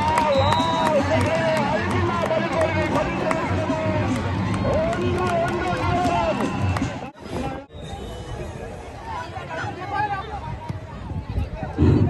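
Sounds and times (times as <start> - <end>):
music: 0.0 - 7.1
spectators shouting and cheering: 0.0 - 12.0.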